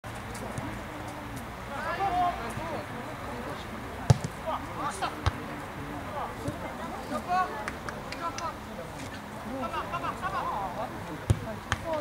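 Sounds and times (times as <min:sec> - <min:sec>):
football kicked on grass: 0:04.1 - 0:04.4.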